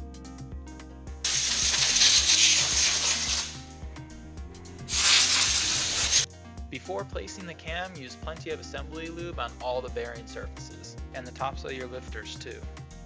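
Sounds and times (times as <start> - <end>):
background music: 0.0 - 13.0
aerosol spray can hissing: 1.2 - 3.7, 4.8 - 6.3.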